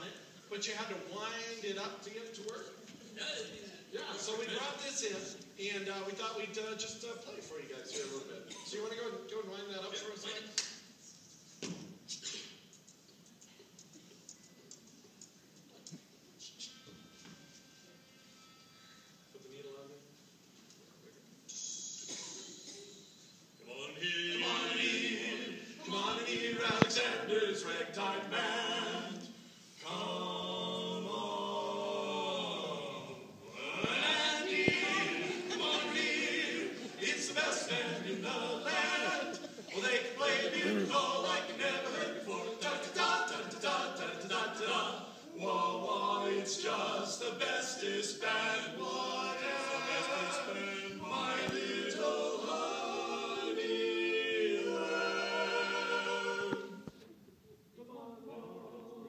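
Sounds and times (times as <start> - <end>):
room hiss: 0.0 - 59.0
male vocal quartet singing: 23.6 - 56.9, 57.8 - 59.0.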